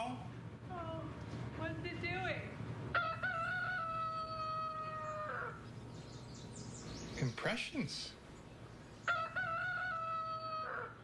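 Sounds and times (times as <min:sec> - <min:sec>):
rooster crowing: 0:02.9 - 0:05.6, 0:09.0 - 0:11.0.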